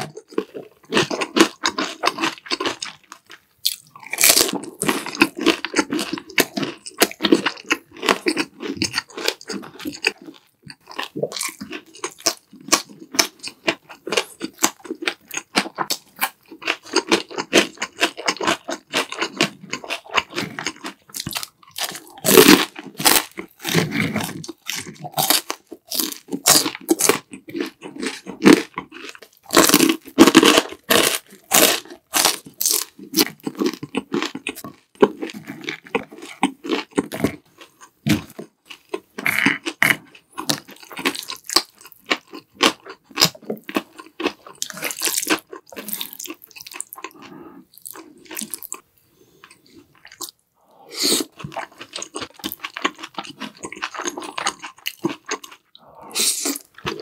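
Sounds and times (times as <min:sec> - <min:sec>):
crunching and chewing fried food: 0:00.0 - 0:57.0.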